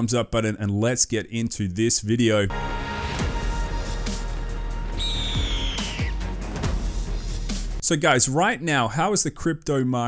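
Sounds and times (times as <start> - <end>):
bird of prey screech: 5.0 - 6.2.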